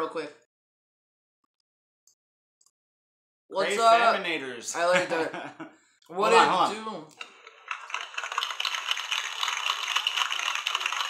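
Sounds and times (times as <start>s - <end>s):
tinny recorded applause: 7.7s - 11.0s.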